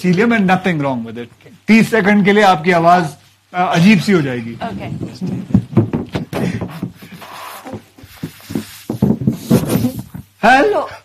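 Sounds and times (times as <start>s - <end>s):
helium hissing from balloon: 7.1s - 10.2s.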